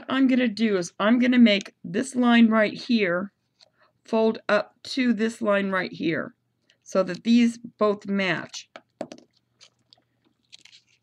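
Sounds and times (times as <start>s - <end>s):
small crackles: 9.3s - 11.0s
paper crinkling and rustling: 9.6s - 11.0s.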